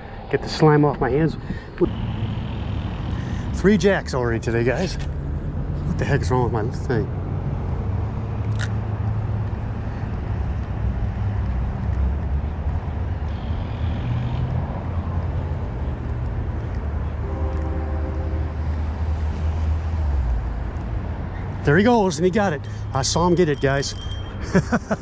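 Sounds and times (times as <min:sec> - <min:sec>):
low rumble of road traffic: 0:00.0 - 0:25.0
vehicle engine drone: 0:00.0 - 0:25.0.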